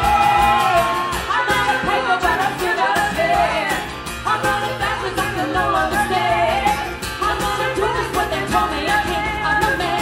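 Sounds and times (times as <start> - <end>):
strummed acoustic guitar: 0.0 - 10.0
women singing: 0.0 - 10.0.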